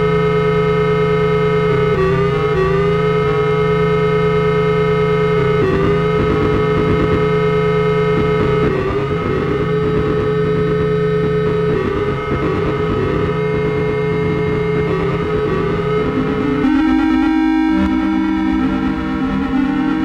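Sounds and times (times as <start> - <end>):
steady low buzz: 0.0 - 20.0
electronic held tones sliding up: 2.0 - 20.0.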